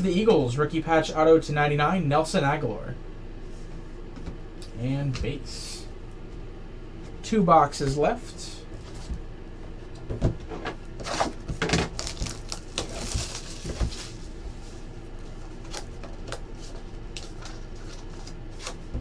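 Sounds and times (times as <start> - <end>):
cardboard rustling: 10.4 - 19.0.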